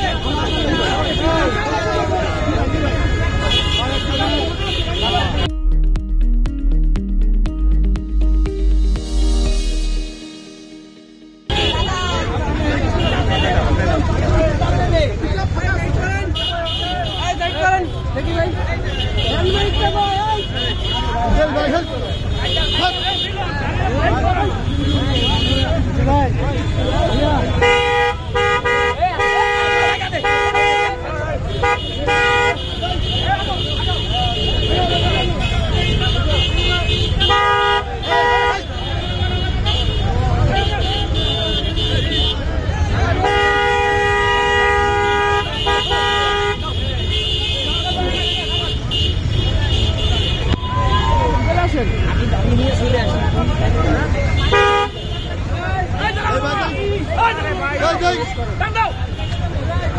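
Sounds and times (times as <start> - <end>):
crowd chatter and shouting: 0.0 - 59.9
vehicle horn honking: 2.3 - 5.6, 9.5 - 14.2, 16.2 - 23.5, 26.6 - 42.5, 43.1 - 50.6, 54.3 - 55.6.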